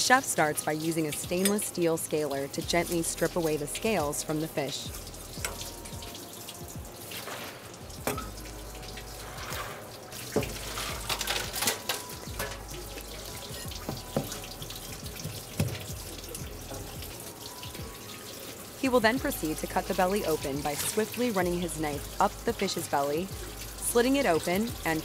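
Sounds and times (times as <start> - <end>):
tap water running: 0.0 - 25.0
fish scaler scraping: 9.2 - 12.6.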